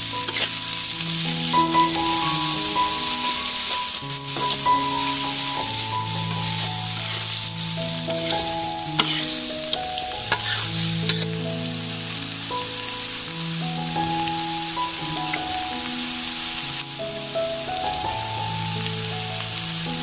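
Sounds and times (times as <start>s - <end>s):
food sizzling in a wok: 0.0s - 20.0s
gentle background tune: 0.0s - 20.0s.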